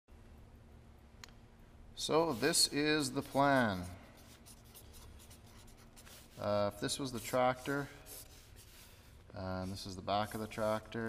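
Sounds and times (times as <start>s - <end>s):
marker scratching on paper: 2.2s - 10.7s.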